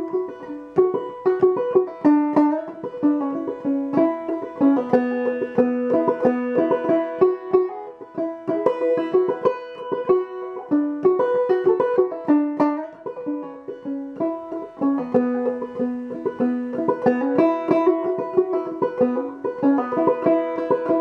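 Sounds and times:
banjo playing: 0:00.0 - 0:21.0.

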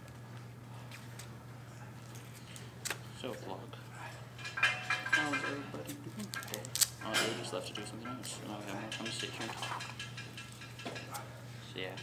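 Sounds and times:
metal clinking: 0:04.3 - 0:12.0.

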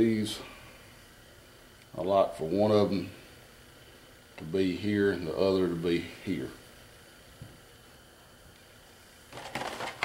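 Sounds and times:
metal parts and tools handled: 0:09.4 - 0:10.0.

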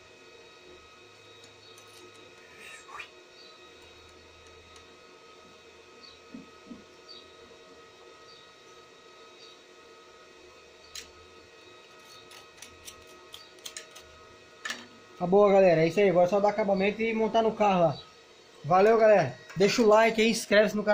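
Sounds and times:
electrical hum: 0:00.0 - 0:20.9.

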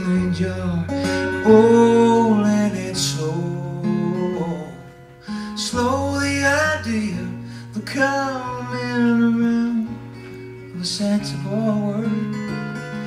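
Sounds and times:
man singing wordless notes: 0:00.0 - 0:12.4
acoustic guitar playing: 0:00.0 - 0:13.0.

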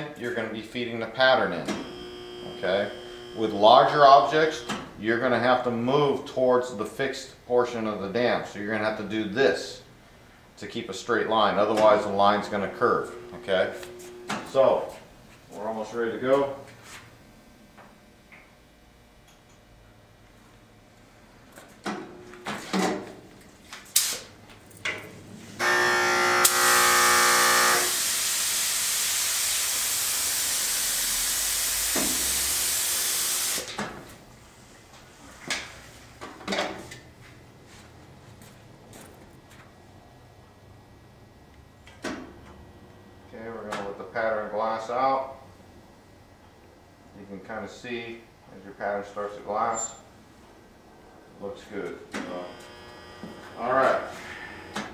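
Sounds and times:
spray gun hissing: 0:26.4 - 0:33.7.

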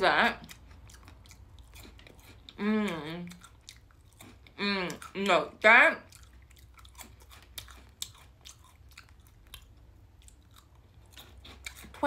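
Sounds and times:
chewing crunchy rice cake: 0:00.3 - 0:12.0.

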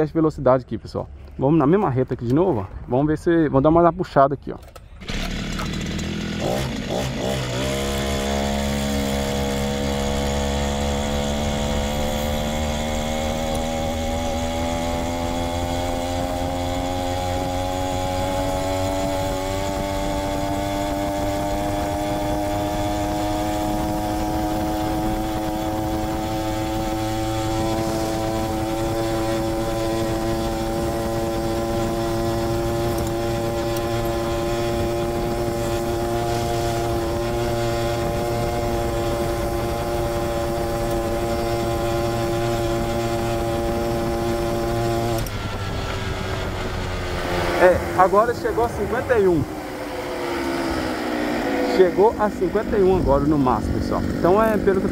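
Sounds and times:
brushcutter engine at full throttle: 0:05.0 - 0:54.9.

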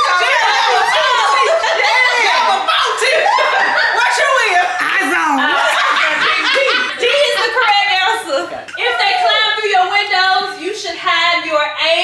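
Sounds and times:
people laughing loudly: 0:00.0 - 0:09.6.

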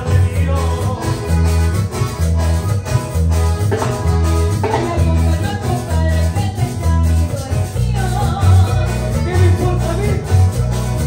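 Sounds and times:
accordion: 0:00.0 - 0:11.0
acoustic guitar: 0:00.0 - 0:11.0
drum kit: 0:00.0 - 0:11.0
electric bass: 0:00.0 - 0:11.0.

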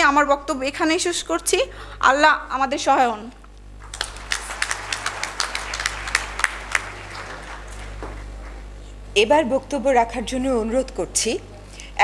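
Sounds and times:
loud individual hand claps: 0:03.8 - 0:08.7
audience applauding: 0:03.8 - 0:08.8.

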